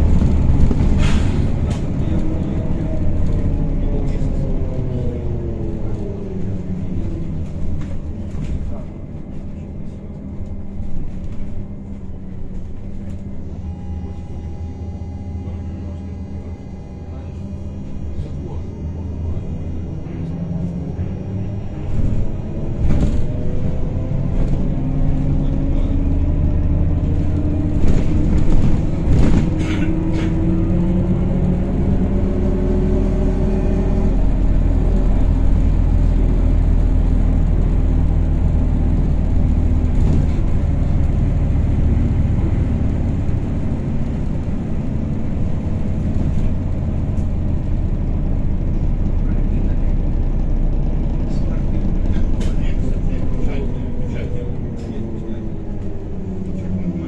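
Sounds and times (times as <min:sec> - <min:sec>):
road rumble: 0:00.0 - 0:57.0.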